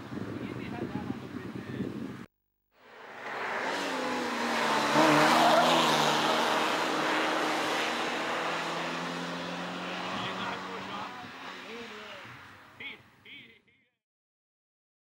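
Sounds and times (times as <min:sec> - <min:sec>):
race car engine at high revs: 0:02.8 - 0:12.8.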